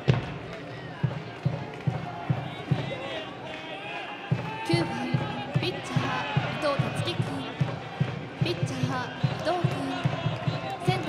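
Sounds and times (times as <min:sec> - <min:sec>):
drum beating steadily: 0:00.0 - 0:03.4, 0:04.3 - 0:11.0
crowd chanting: 0:00.0 - 0:11.0.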